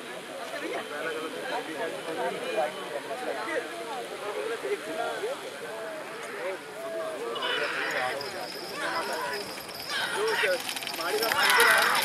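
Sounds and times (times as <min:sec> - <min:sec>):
people calling and shouting: 0:00.0 - 0:12.0
hooves galloping on dirt: 0:08.0 - 0:12.0.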